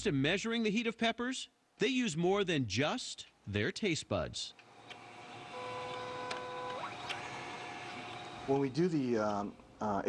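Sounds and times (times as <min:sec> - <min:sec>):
mechanical hum: 0:04.5 - 0:10.0
motor whining: 0:04.8 - 0:08.8.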